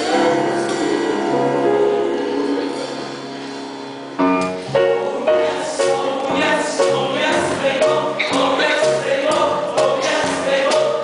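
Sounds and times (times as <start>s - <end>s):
voices singing together: 0.0s - 3.3s, 4.8s - 11.0s
pit band playing: 4.2s - 11.0s.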